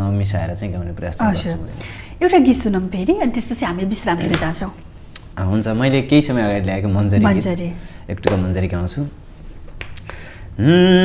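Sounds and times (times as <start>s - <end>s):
man speaking: 0.0s - 1.8s, 5.4s - 9.2s.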